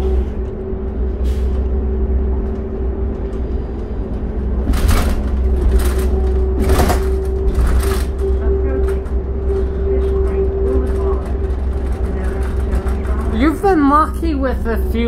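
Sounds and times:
bus engine drone: 0:00.0 - 0:15.0
constant whine: 0:00.0 - 0:15.0.

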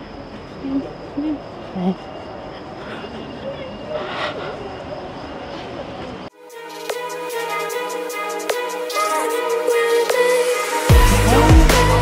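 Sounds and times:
distant traffic: 0:00.0 - 0:06.3.

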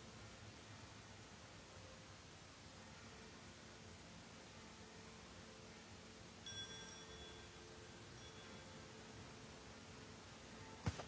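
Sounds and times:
small bell ringing: 0:06.4 - 0:09.2.

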